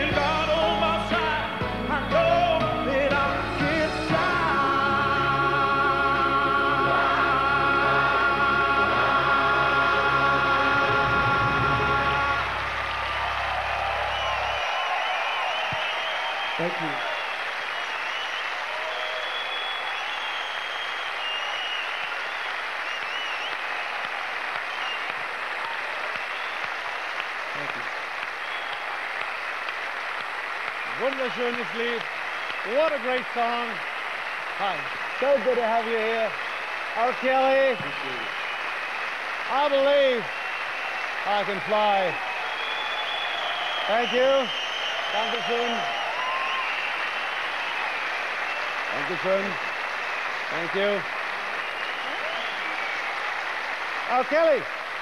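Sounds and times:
choir and band final chord: 3.2 - 14.2
audience applauding: 3.8 - 55.0.

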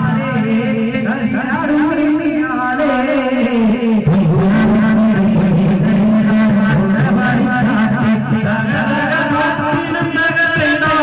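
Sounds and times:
man singing through pa system: 0.0 - 11.0.

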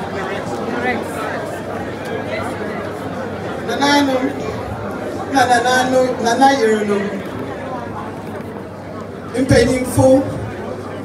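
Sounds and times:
crowd chatter in a hall: 0.0 - 11.0.

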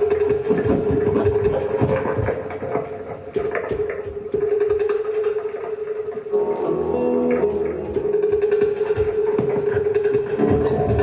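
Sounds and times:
grinding and clicking noise textures: 0.0 - 11.0.

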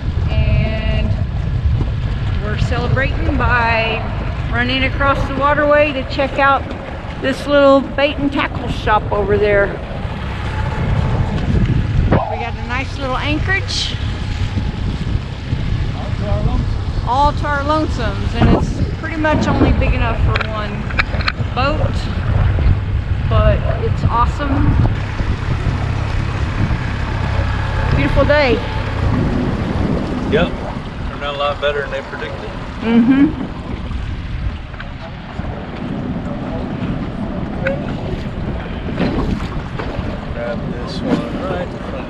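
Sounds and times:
outboard motor running: 0.0 - 42.0
water rushing along hull: 0.0 - 42.0
wind buffeting microphone: 0.0 - 42.0.

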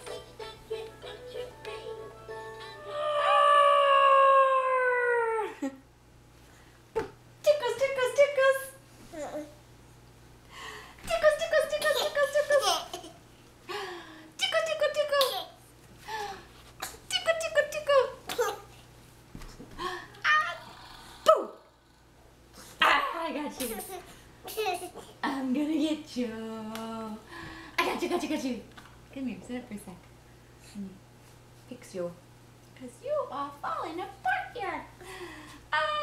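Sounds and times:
dog howling: 2.7 - 5.5.

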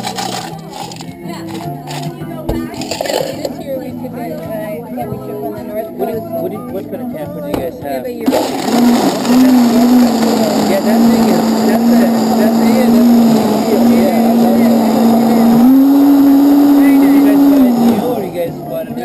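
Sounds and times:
blender crushing ice: 0.0 - 2.1, 2.7 - 3.5, 8.3 - 18.6.

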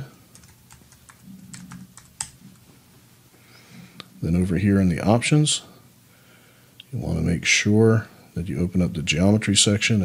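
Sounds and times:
keyboard typing: 0.3 - 2.6.

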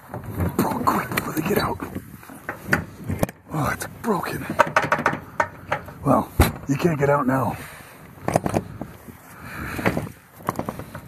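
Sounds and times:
metal clanks and scraping: 0.0 - 7.1
metal knocks: 4.3 - 7.0.

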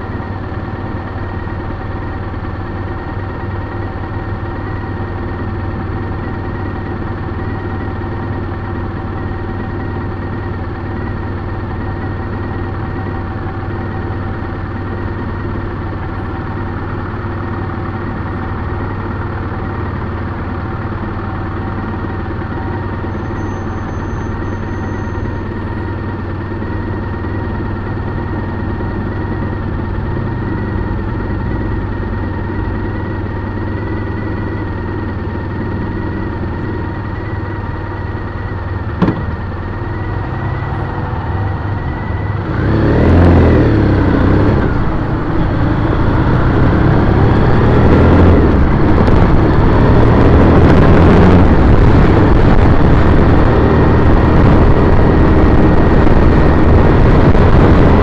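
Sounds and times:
motorcycle engine idling and revving: 0.0 - 58.0
wind rushing over microphone: 43.7 - 58.0.

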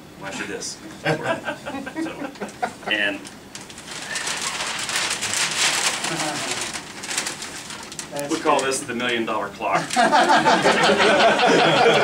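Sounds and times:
people laughing: 0.9 - 3.0, 9.8 - 12.0
paper bag rustling: 3.2 - 10.6.

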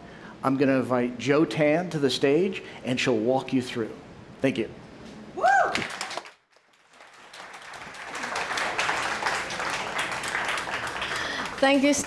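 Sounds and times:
audience applause: 5.8 - 12.0.

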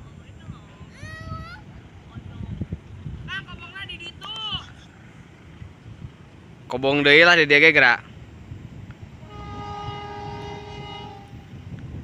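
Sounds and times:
diesel locomotive horn blast: 9.1 - 11.7.

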